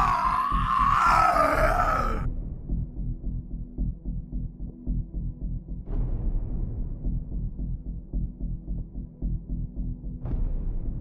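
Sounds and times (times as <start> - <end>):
man screaming in pain: 0.0 - 2.2.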